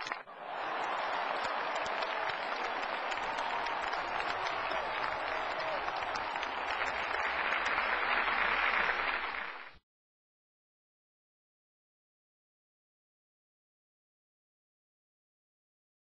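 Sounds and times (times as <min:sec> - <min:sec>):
audience applause: 0:00.0 - 0:09.8.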